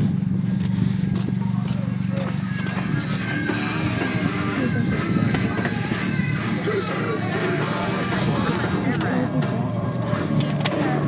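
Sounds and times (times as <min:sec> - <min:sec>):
car cabin rumble: 0:00.0 - 0:11.0
faint voices: 0:01.0 - 0:11.0.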